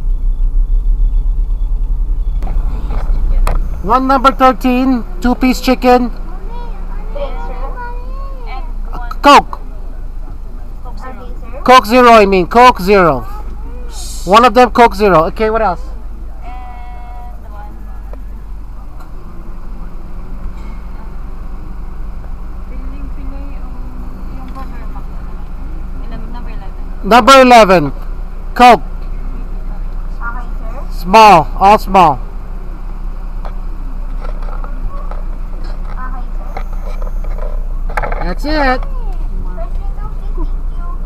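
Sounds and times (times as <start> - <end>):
steady-pitched tone: 0.0 - 5.5
car engine idling: 0.0 - 41.0
faint voices: 33.4 - 41.0.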